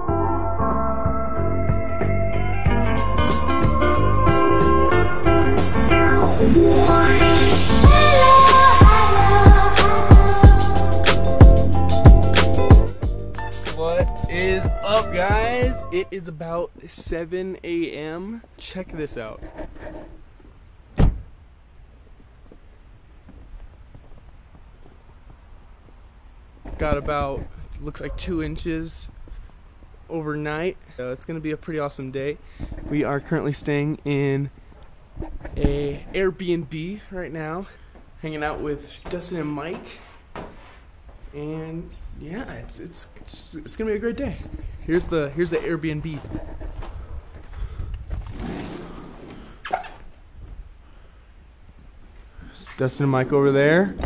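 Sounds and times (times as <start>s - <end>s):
sharp thump: 21.0s - 21.3s
wind rumble on microphone: 46.2s - 48.6s.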